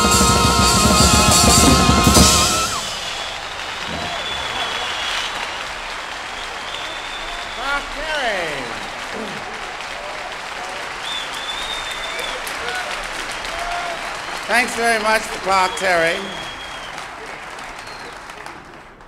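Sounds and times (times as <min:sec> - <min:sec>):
high whistles: 0:00.0 - 0:08.0, 0:11.0 - 0:18.2
audience applauding: 0:00.0 - 0:19.0.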